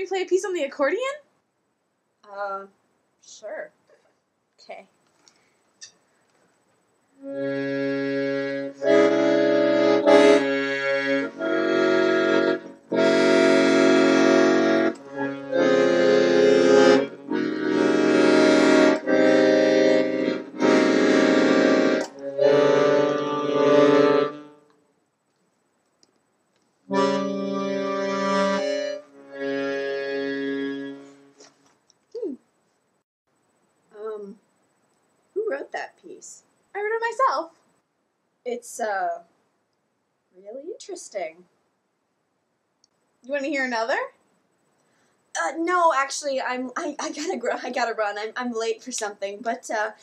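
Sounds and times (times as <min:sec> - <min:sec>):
accordion held chords: 0:07.2 - 0:24.7, 0:26.9 - 0:31.5.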